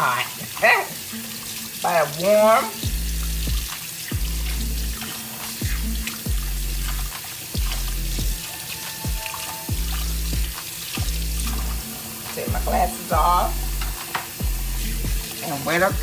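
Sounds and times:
faucet running into steel sink: 0.0s - 16.0s
hands rinsing under water: 0.0s - 16.0s
background music with bass beat: 2.8s - 16.0s.

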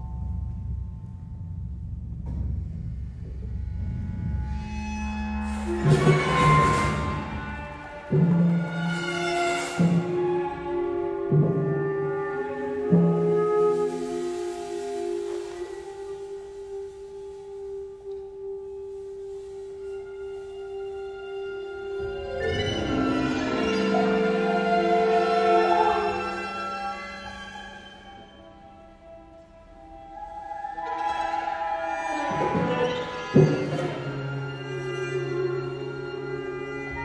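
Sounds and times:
chamber orchestra playing: 5.4s - 18.5s, 19.7s - 29.2s, 29.9s - 37.0s.

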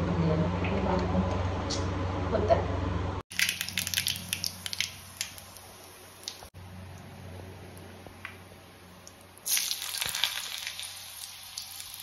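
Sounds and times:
hot oil sizzling and crackling: 3.3s - 6.5s, 9.0s - 12.0s.

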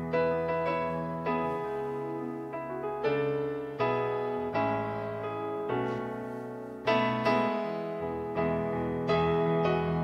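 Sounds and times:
slow piano chords: 0.0s - 10.0s.

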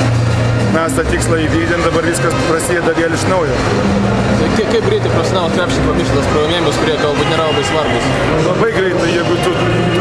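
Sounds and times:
steady background noise: 0.0s - 10.0s
man talking: 0.7s - 3.6s, 4.4s - 10.0s.

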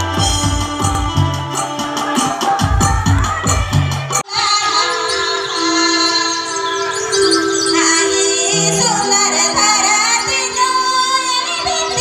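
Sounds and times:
light percussion: 0.0s - 4.3s
rhythmic drumming: 0.0s - 4.8s.

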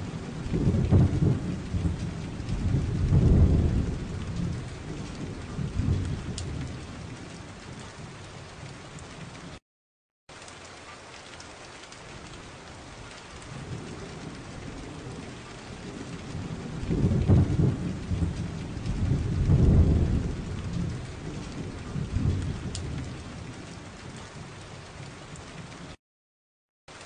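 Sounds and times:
thunder rumbles: 0.0s - 9.6s, 12.1s - 25.9s
rain hiss: 10.3s - 25.9s.

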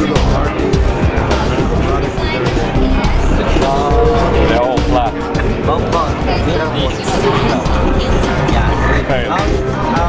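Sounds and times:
loud music with heavy bass: 0.0s - 10.0s
people talking: 0.0s - 10.0s.

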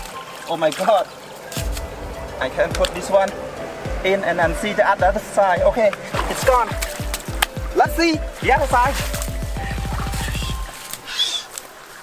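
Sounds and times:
outdoor background: 0.0s - 12.0s
falling pitch sweeps: 1.5s - 6.3s.

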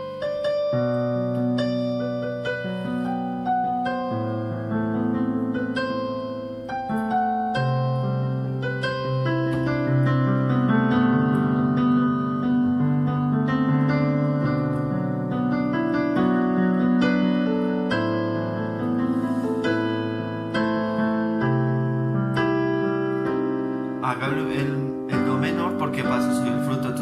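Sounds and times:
electronic keyboard piano playing: 0.0s - 27.0s.

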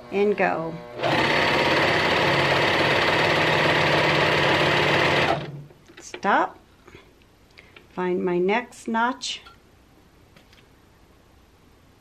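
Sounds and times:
serger stitching: 1.0s - 5.7s.

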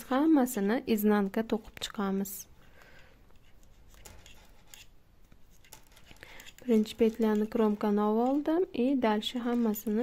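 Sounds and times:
metal knitting needles clicking: 5.5s - 10.0s.

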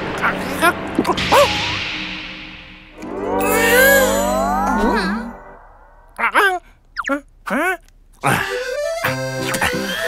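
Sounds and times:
cartoon whoosh: 3.1s - 6.0s.

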